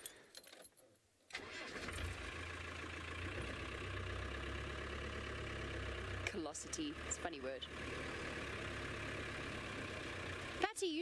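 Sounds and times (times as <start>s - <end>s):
vehicle engine starting and running: 1.3s - 11.0s.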